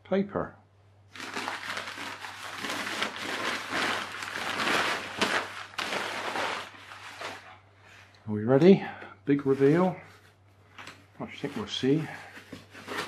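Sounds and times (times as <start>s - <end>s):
packing paper crinkling: 1.1s - 7.6s, 9.6s - 13.0s.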